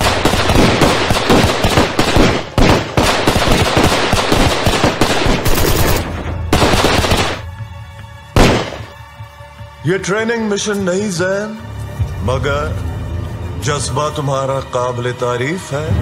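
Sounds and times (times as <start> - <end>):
automatic gunfire: 0.0 - 7.4, 8.4 - 8.9
loud blast: 8.4 - 8.9.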